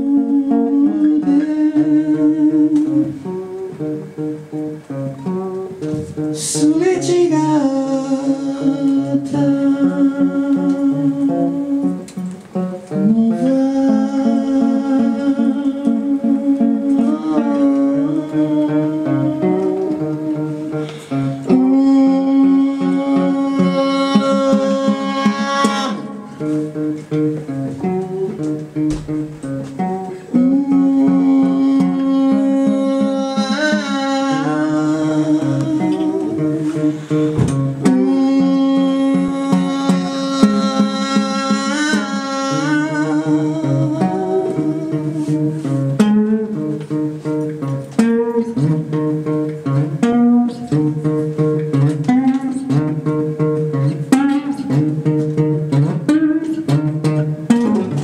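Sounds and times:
acoustic guitar strumming: 0.0 - 58.0
person singing long notes: 0.0 - 58.0.

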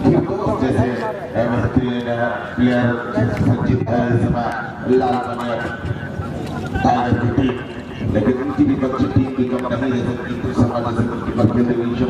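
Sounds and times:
man commentating: 0.0 - 12.0.

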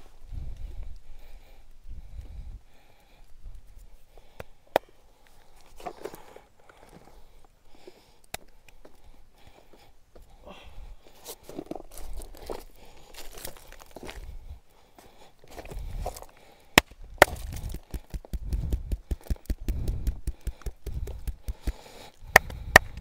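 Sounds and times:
fast taps on skin: 17.3 - 23.0.

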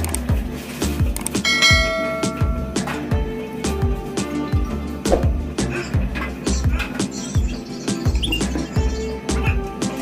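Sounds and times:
background music with steady beat: 0.0 - 10.0
bell-chime notification: 1.5 - 2.9.

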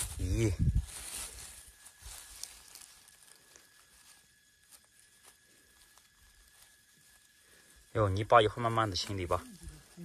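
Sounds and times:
rustling of pine needles and leaves: 0.0 - 10.0.

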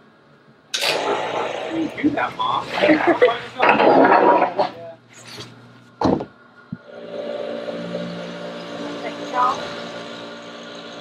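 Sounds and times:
factory machinery humming: 0.7 - 5.1, 6.4 - 11.0.

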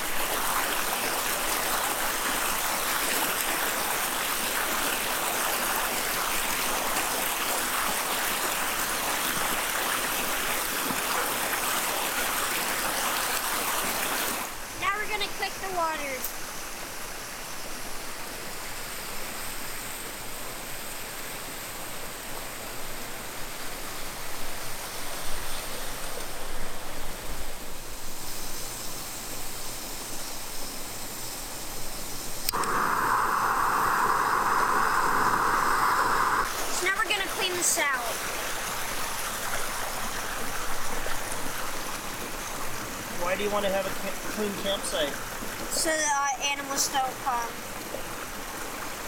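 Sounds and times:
creek water rushing: 0.0 - 28.2, 32.5 - 49.0
loud steady hiss: 0.0 - 48.9.

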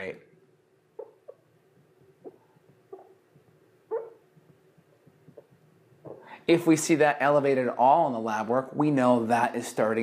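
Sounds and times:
marker squeaking on whiteboard: 1.0 - 1.5, 2.2 - 6.2.

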